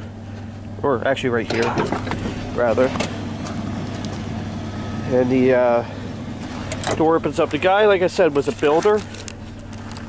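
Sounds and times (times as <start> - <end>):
sliding door motor hum: 1.4 - 10.0.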